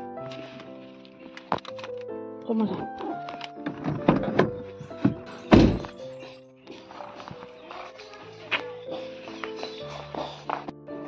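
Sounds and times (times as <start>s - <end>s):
car door closing thud: 5.1s - 5.9s.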